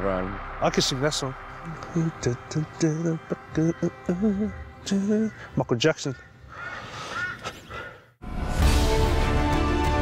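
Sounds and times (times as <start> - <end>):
bird calling: 3.1 - 8.1.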